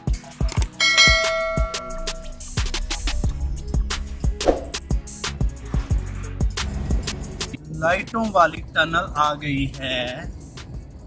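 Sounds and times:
hip-hop background music: 0.0s - 11.0s
bell-like ding: 0.8s - 2.4s.

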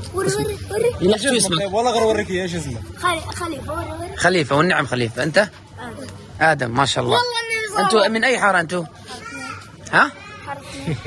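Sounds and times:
child speaking: 0.0s - 1.2s, 2.9s - 4.2s, 5.8s - 6.2s, 7.1s - 8.2s, 9.0s - 11.0s.

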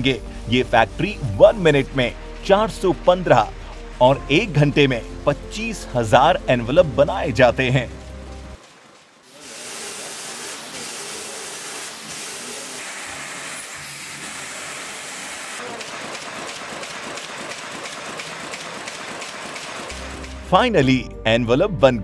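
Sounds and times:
machine clattering with hiss: 8.0s - 20.4s.

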